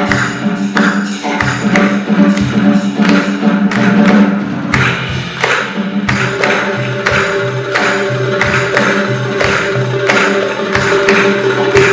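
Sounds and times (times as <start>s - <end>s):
darbuka strokes: 0.0s - 11.9s
drum kit: 0.0s - 11.9s.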